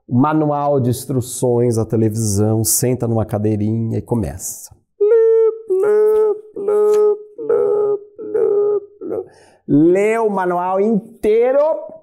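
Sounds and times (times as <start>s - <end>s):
man humming monotone notes: 5.0s - 9.4s.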